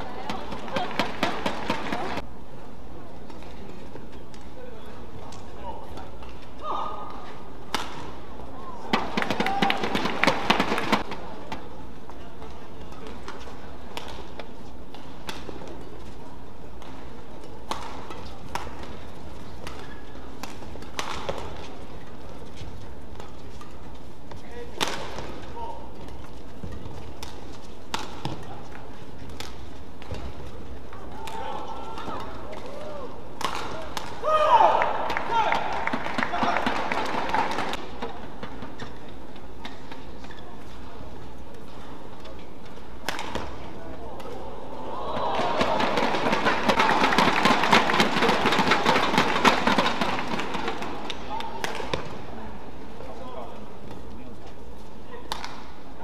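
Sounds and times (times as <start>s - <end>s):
rackets hitting shuttlecock: 5.2s - 11.7s, 16.8s - 22.0s, 23.1s - 40.4s, 41.5s - 44.5s, 45.1s - 52.3s, 55.2s - 55.9s.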